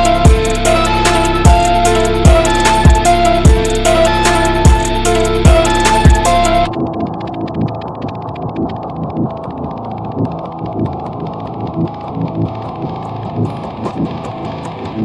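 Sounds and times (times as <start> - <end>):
muffled electric guitar riff: 0.0 - 6.9.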